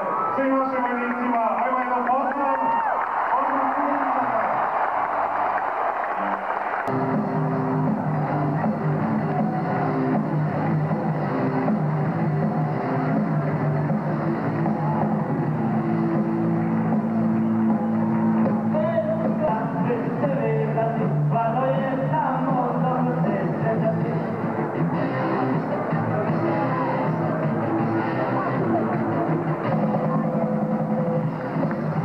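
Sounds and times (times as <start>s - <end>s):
crowd noise: 0.0s - 32.0s
live rock band playing: 6.9s - 20.2s, 22.0s - 32.0s.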